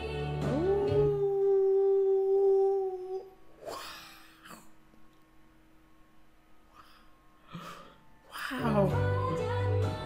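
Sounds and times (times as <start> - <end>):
breathy sound: 6.7 - 8.6.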